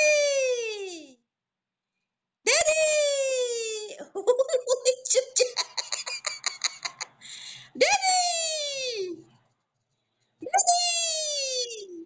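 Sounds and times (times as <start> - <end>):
person laughing: 4.0 - 7.4.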